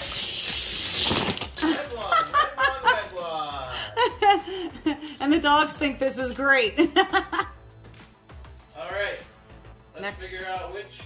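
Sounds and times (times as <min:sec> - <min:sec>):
toy cars rolling down plastic track: 0:00.0 - 0:02.1.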